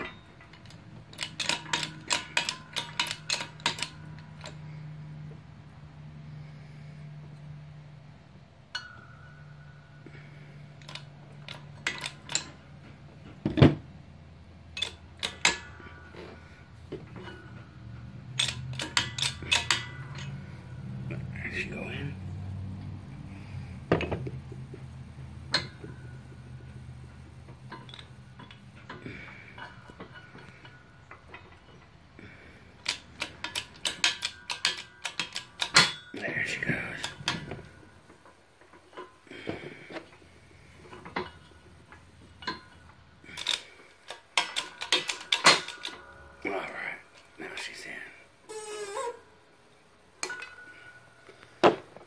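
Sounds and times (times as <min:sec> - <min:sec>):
metal tools clinking: 0:00.0 - 0:04.8, 0:08.7 - 0:13.0, 0:14.7 - 0:22.2, 0:23.3 - 0:49.1, 0:50.2 - 0:52.0
low steady hum: 0:00.0 - 0:52.0.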